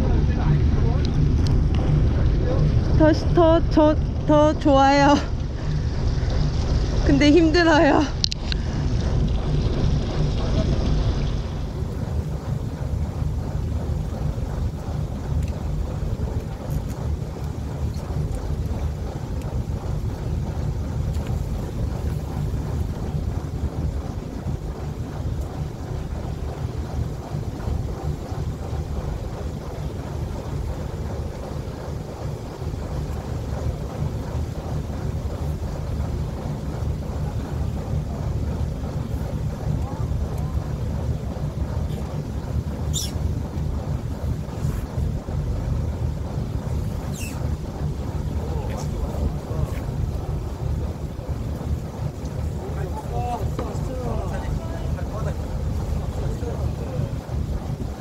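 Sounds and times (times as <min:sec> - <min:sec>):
boat engine rumble: 0:00.0 - 0:58.0
wind buffeting microphone: 0:00.0 - 0:58.0
high chirp: 0:42.9 - 0:43.2.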